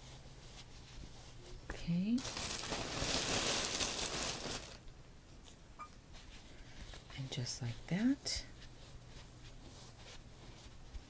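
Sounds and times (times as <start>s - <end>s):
fiberfill stuffing rustling: 0.0s - 5.0s, 6.1s - 11.0s.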